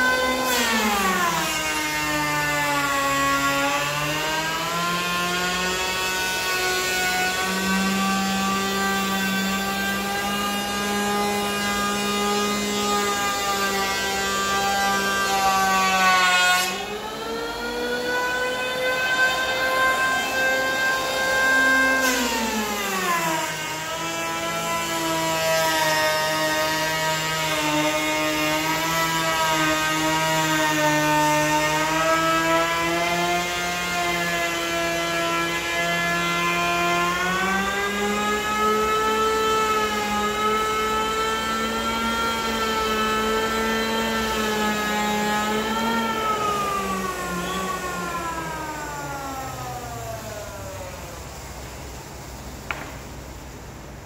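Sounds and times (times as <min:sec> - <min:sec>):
electric hand planer cutting wood: 0:00.0 - 0:51.4.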